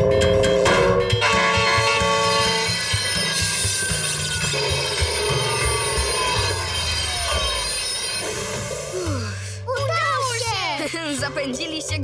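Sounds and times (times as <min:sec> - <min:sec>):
background music: 0:00.0 - 0:12.0
train wheels screeching on rail: 0:02.0 - 0:09.6.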